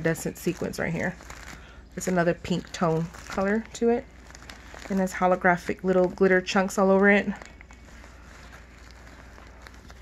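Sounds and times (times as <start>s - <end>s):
sequined fabric rustling: 0.0s - 10.0s.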